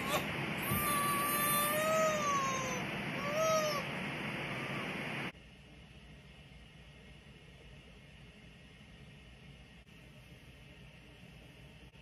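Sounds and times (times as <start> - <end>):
baby crying: 0.0 - 3.9
steady hiss: 0.0 - 12.0.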